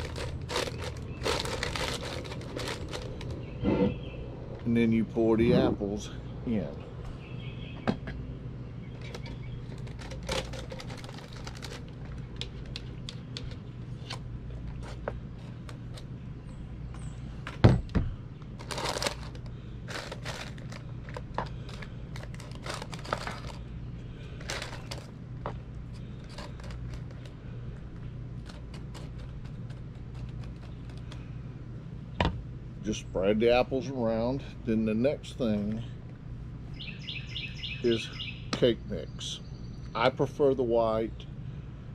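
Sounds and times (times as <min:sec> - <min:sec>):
steady low hum: 0:00.0 - 0:41.9.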